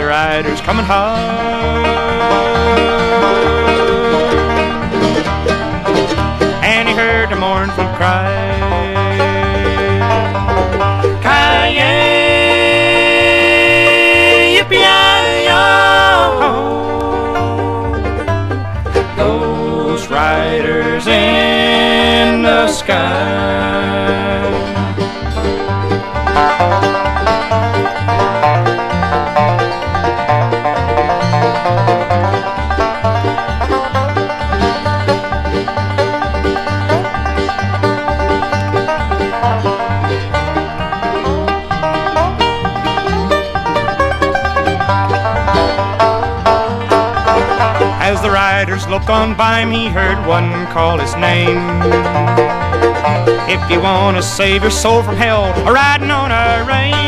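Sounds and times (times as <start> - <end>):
bluegrass band playing: 0.0 - 57.0
fast banjo picking: 0.0 - 57.0
stepping bass line: 0.0 - 57.0.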